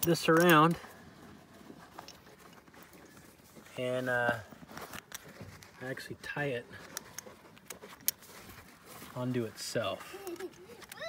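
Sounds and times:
handling noise: 0.0s - 11.0s.

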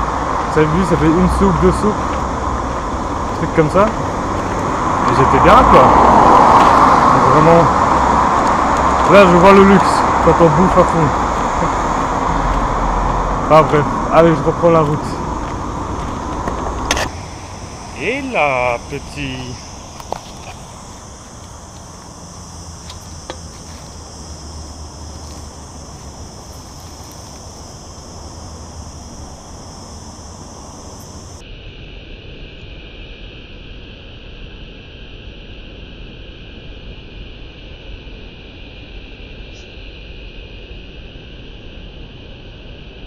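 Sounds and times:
low rumble: 0.0s - 31.4s
insects buzzing: 0.0s - 33.2s.

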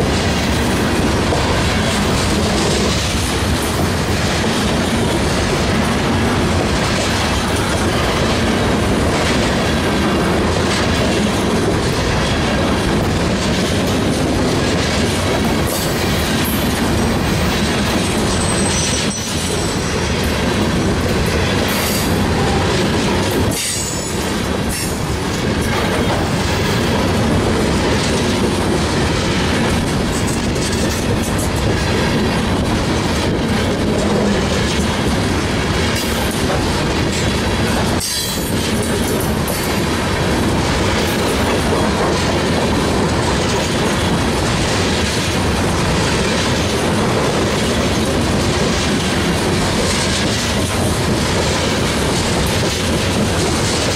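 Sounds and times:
train wheels rumbling on rails: 0.0s - 53.9s
high wheel squeal: 18.3s - 20.1s.

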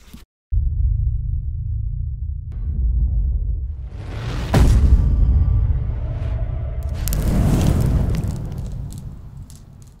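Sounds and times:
low rumble: 0.6s - 10.0s
fire crackles: 6.8s - 10.0s.

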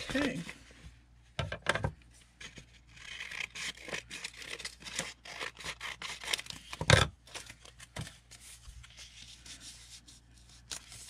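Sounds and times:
book page rustling: 7.4s - 11.0s.

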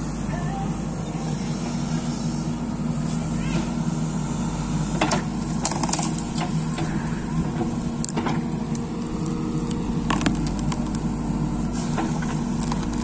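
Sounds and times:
diesel engine running under load: 0.0s - 13.0s.

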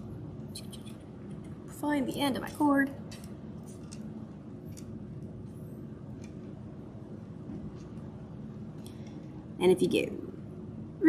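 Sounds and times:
plastic beads clicking and rustling: 3.1s - 4.1s.

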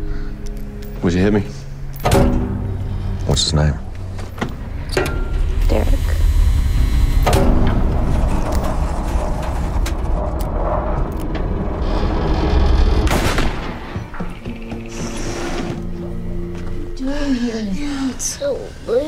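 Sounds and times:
dense low rumble: 0.8s - 14.0s
grinding noise: 3.0s - 16.1s
sharp booming hits: 4.8s - 11.8s, 12.4s - 14.1s.

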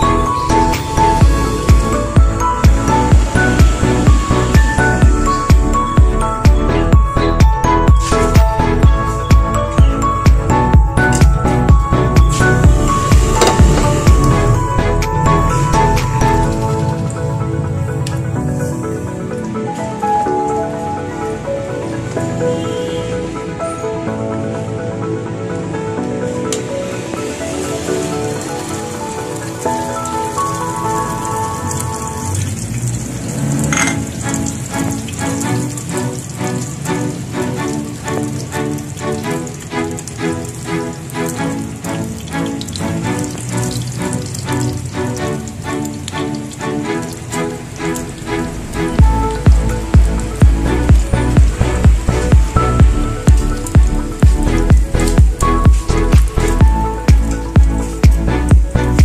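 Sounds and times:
background music with heavy beat: 0.0s - 17.0s, 49.0s - 59.0s.

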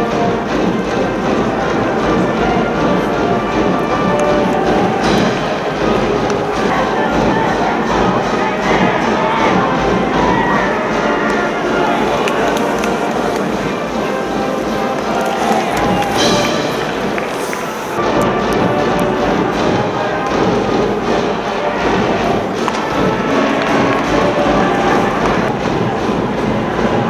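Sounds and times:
band music: 0.0s - 27.0s
stadium crowd cheering: 0.0s - 27.0s.

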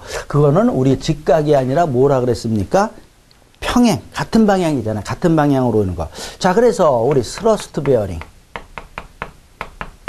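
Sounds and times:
writing tool tapping board: 7.1s - 10.0s.

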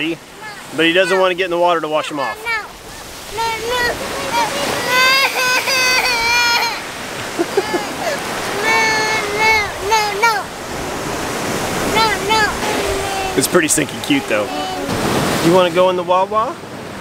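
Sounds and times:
small waves on shore: 0.0s - 17.0s
toddler whining and wailing: 0.4s - 10.6s, 11.8s - 13.5s, 14.2s - 15.0s.

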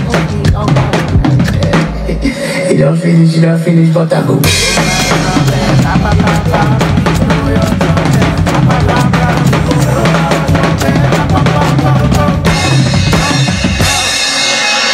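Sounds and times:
drum kit playing: 0.0s - 2.7s, 4.4s - 14.9s
afro-style song with bass line: 0.0s - 14.9s.

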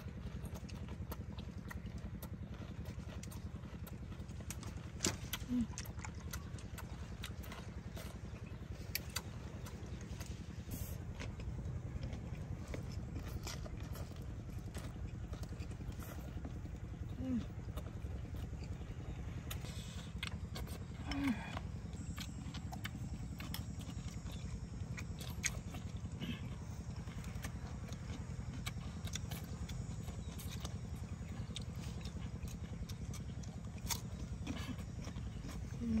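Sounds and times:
person chewing food: 0.0s - 36.0s
steady low rumble: 0.0s - 36.0s
person humming: 21.0s - 21.6s.

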